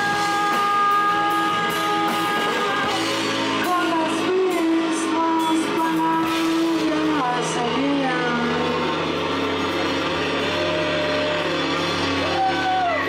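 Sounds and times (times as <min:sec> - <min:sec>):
person singing: 0:00.0 - 0:09.2
live folk-pop band: 0:00.0 - 0:13.0.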